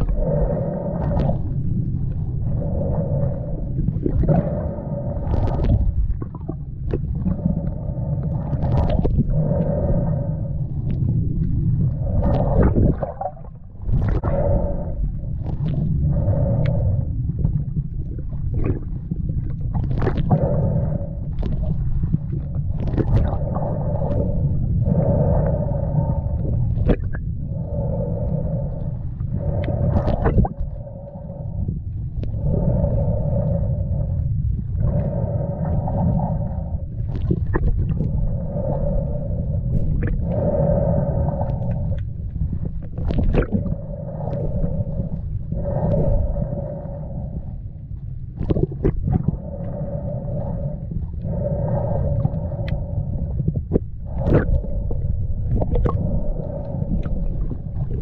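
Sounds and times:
underwater water rumble: 0:00.0 - 0:58.0.

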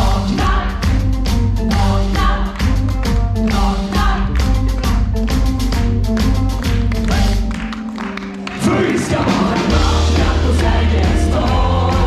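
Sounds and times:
voices singing together: 0:00.0 - 0:02.8, 0:03.4 - 0:04.4, 0:08.5 - 0:12.0
drum beats: 0:00.0 - 0:12.0
live band playing pop song: 0:00.0 - 0:12.0.

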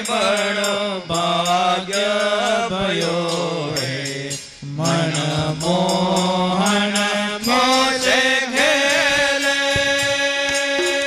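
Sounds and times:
harmonium: 0:00.0 - 0:11.0
men singing in long notes: 0:00.0 - 0:11.0
tabla strokes: 0:00.0 - 0:11.0.

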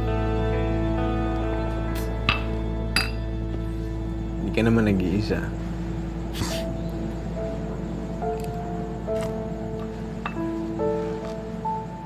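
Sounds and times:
soft background music: 0:00.0 - 0:12.0
drinking glass clinking: 0:02.3 - 0:03.2.

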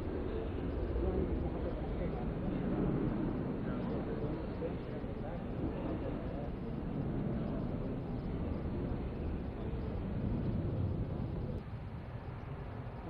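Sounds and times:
faint indistinct voices: 0:00.0 - 0:13.0
low outdoor rumble: 0:00.0 - 0:13.0.

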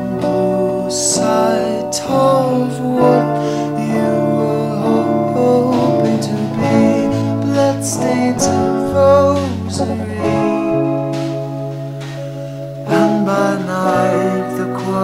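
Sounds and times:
indie pop band instrumental: 0:00.0 - 0:15.0.

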